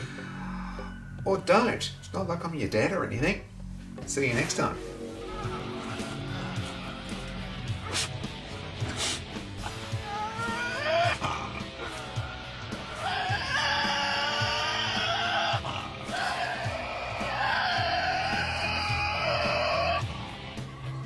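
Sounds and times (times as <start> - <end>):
background music with steady beat: 0.0 - 21.0
animal wavering screeches: 9.9 - 20.1.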